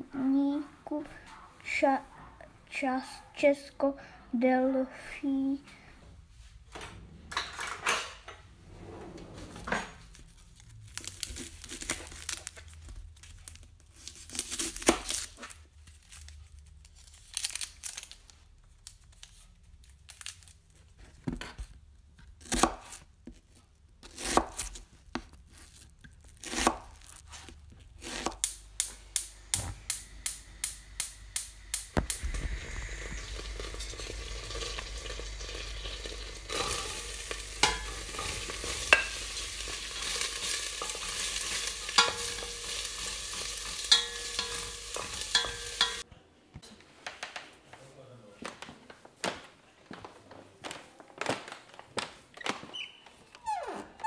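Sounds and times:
sizzling hiss with low rumble: 0:28.6 - 0:46.0.

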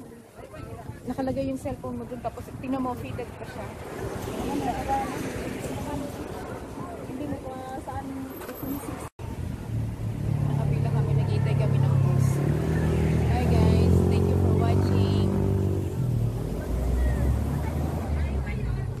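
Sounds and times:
vehicle engine droning: 0:09.2 - 0:19.0.

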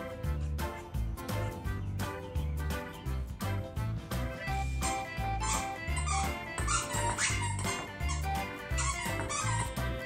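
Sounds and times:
squeaky dog toy squeaking: 0:04.4 - 0:10.0.

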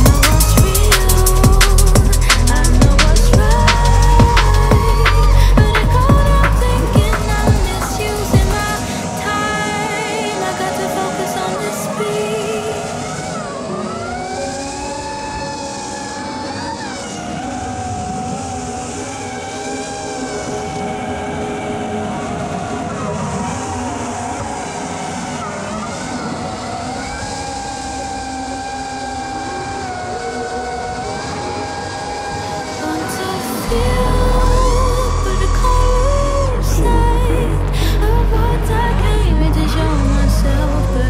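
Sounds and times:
drone motors whining: 0:00.0 - 0:41.0.

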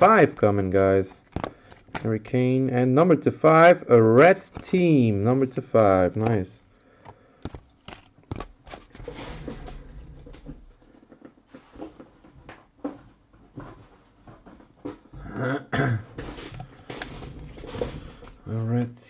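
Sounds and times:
cards rustling and clicking: 0:01.1 - 0:02.2, 0:04.3 - 0:04.8, 0:07.0 - 0:11.4.

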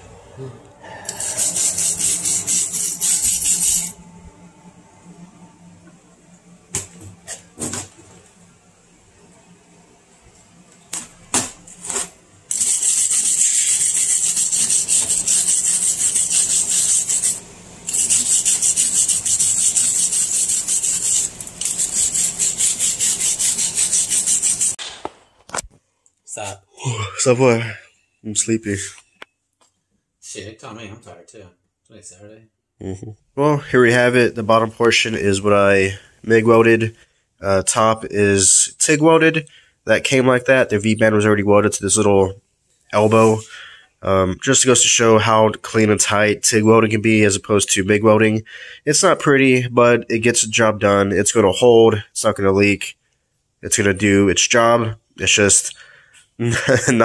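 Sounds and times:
wire brush scraping metal: 0:01.1 - 0:04.0, 0:12.5 - 0:24.8.

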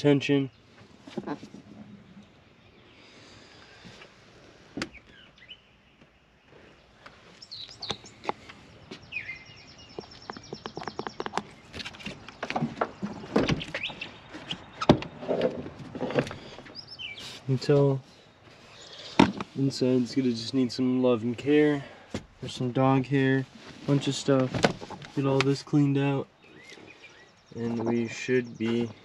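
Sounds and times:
faint bird chirps: 0:04.8 - 0:11.7, 0:26.3 - 0:29.0
handling clicks and knocks: 0:10.0 - 0:16.4.

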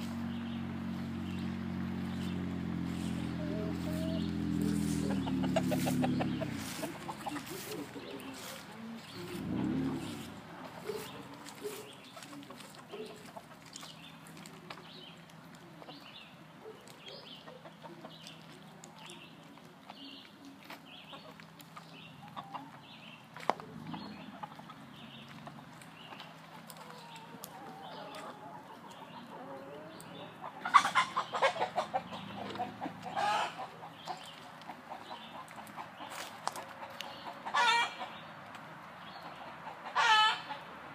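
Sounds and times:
hens clucking: 0:00.0 - 0:40.9.

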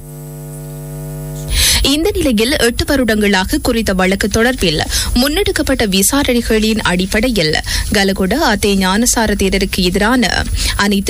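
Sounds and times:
electronic buzzing hum: 0:00.0 - 0:11.0
person speaking: 0:01.4 - 0:11.0.

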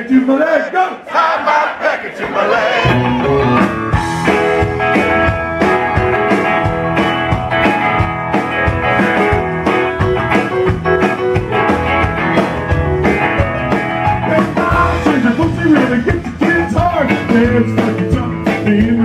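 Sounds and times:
electric guitar: 0:02.8 - 0:19.0
rock band playing live: 0:02.8 - 0:19.0
drum hits: 0:02.9 - 0:19.0.

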